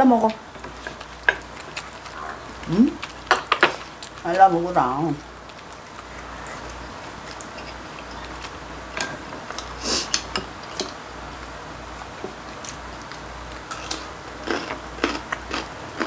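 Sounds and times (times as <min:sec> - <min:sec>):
eating noises: 0:00.0 - 0:16.0.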